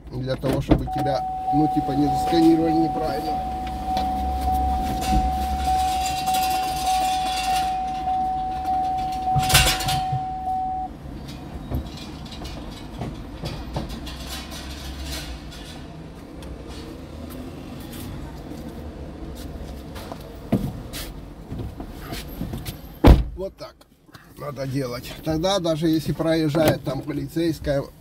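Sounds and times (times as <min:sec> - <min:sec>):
street noise: 0:00.0 - 0:28.0
car electronic warning tone: 0:00.9 - 0:10.9
loud thump: 0:04.8 - 0:05.6, 0:09.2 - 0:10.5.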